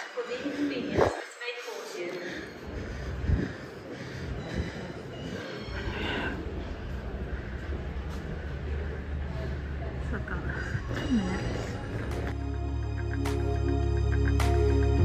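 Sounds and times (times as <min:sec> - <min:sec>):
faint voices: 0:00.0 - 0:12.4
low rumble of trains: 0:02.6 - 0:15.0.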